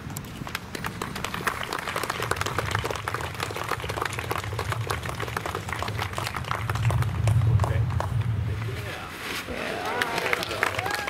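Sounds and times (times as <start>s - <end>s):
crowd applauding: 0.4s - 8.2s, 9.7s - 11.0s.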